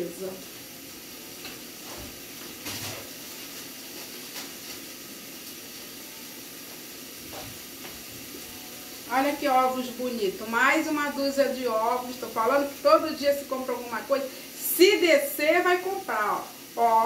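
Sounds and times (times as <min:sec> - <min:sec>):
food sizzling in pots: 0:00.0 - 0:17.0.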